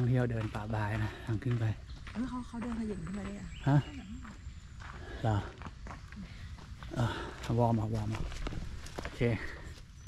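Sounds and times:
footsteps on dry leaves: 0:00.0 - 0:09.9.

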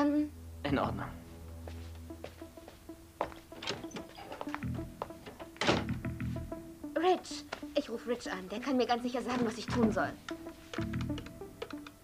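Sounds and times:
soft background music: 0:00.0 - 0:12.0
wooden door shutting thunk: 0:03.6 - 0:04.5, 0:05.2 - 0:06.1.

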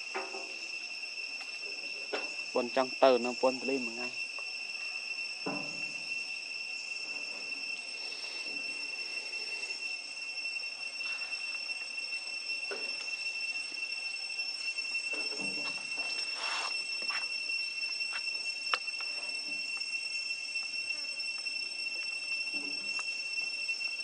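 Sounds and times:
insects chirring: 0:00.0 - 0:24.0.

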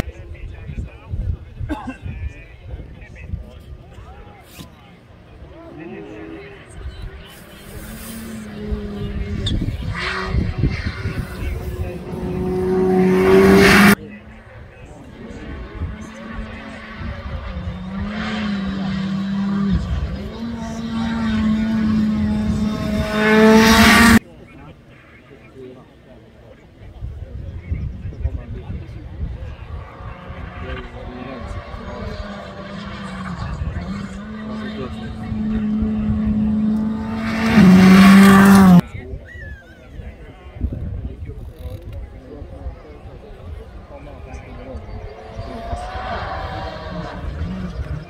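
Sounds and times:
rally car engine passing by: 0:05.4 - 0:24.2, 0:28.8 - 0:38.8, 0:43.1 - 0:48.0.

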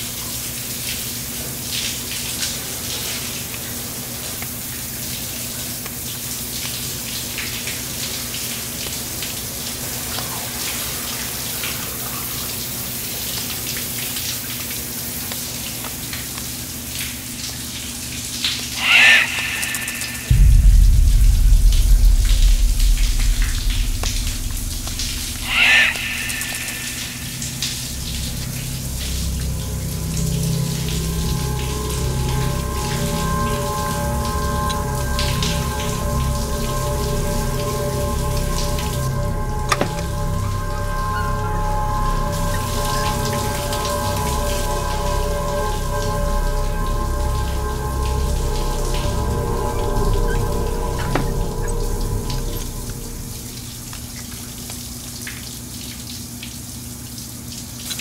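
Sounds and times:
shower water spraying: 0:18.7 - 0:55.1
deep low hit drone: 0:18.9 - 0:54.6
held steady tones: 0:19.6 - 0:54.2.

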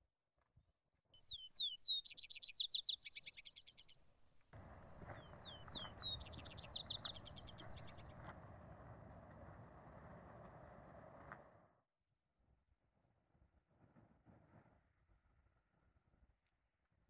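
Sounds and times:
songbird whistling and trilling: 0:01.2 - 0:04.0, 0:05.1 - 0:08.1.

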